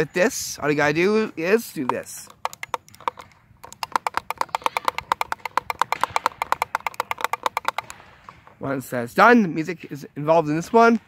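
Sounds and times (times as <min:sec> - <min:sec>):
pellet drum rattling: 0:01.5 - 0:08.6.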